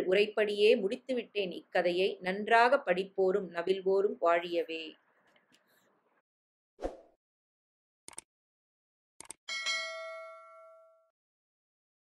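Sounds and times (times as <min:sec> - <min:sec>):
bell chime ding: 0:09.5 - 0:11.1.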